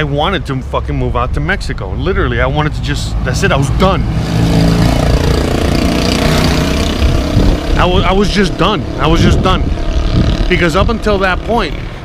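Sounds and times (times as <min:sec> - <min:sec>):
vehicle engine driving past: 0:02.9 - 0:12.0
steady low rumble: 0:06.6 - 0:12.0.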